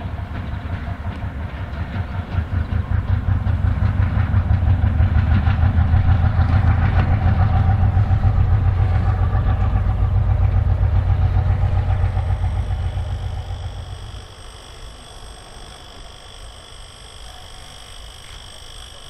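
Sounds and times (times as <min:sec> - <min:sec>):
diesel locomotive passing: 0:00.0 - 0:19.0.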